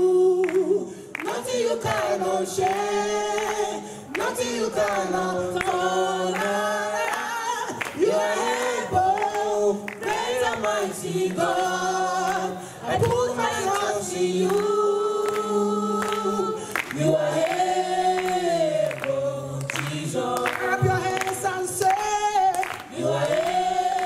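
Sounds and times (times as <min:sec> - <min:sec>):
gospel choir singing: 0:00.0 - 0:24.0.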